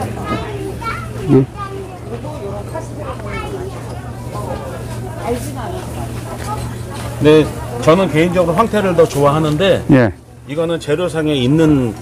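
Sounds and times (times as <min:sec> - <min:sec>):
background voices talking: 0:00.0 - 0:10.5.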